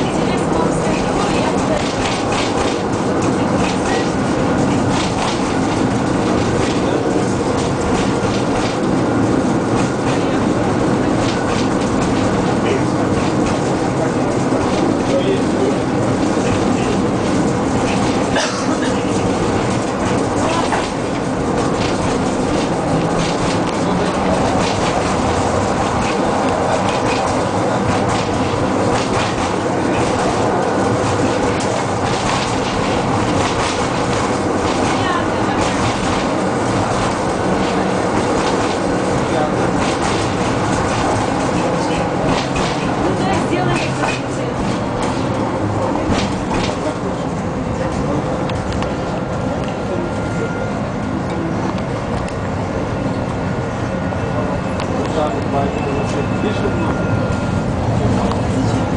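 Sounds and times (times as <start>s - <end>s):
rail joint clicks: 0.0s - 52.5s
tram wheels rumbling on rails: 0.0s - 58.9s.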